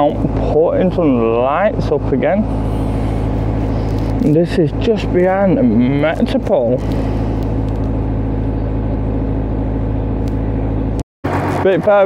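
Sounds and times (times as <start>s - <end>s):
engine humming steadily: 0.0s - 12.0s.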